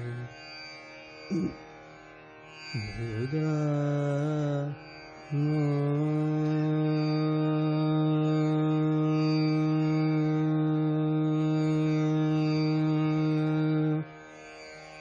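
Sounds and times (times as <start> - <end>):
man singing classical vocal: 0.0 - 0.4, 1.3 - 1.6, 2.8 - 14.1
tanpura drone: 0.0 - 15.0.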